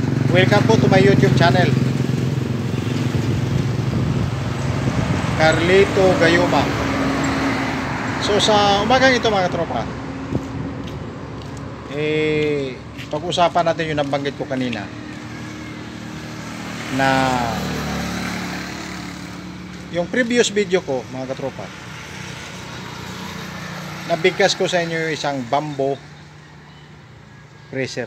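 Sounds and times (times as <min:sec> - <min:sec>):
engine running steadily: 0:00.0 - 0:24.6.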